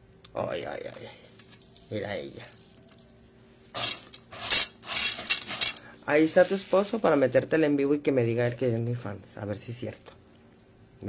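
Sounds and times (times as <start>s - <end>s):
rustling and clattering on a table: 2.5s - 7.0s.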